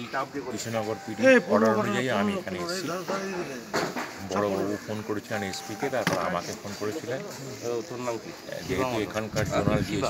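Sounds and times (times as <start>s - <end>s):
man speaking: 0.0s - 9.1s.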